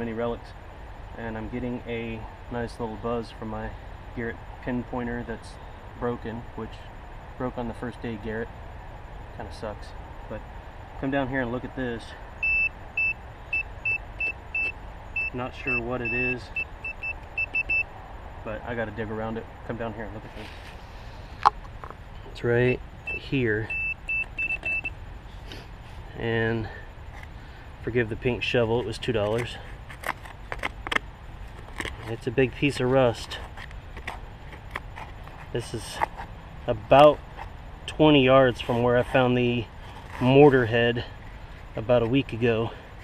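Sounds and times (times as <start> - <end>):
short high-pitched beeps: 12.4 - 17.9, 22.6 - 24.9
hand shovel scraping soil: 38.5 - 40.8.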